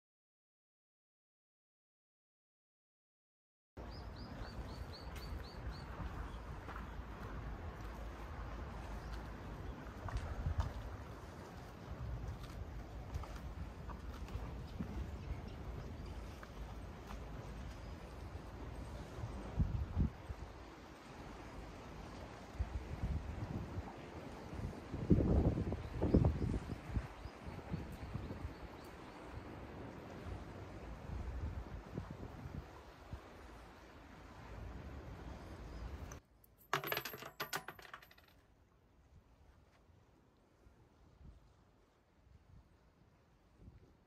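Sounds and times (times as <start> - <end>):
wind rumble on microphone: 3.8 - 36.2, 40.9 - 44.0
small metal objects clinking: 36.5 - 38.3.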